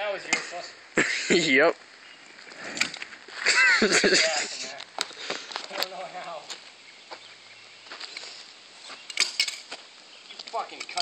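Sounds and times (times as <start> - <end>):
voices: 0.0 - 9.1, 10.0 - 11.0
people laughing: 1.0 - 1.6, 3.4 - 4.8.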